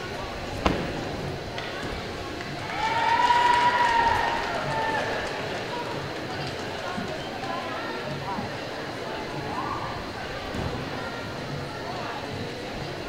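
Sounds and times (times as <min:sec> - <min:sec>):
distant voices and movement: 0:00.0 - 0:13.0.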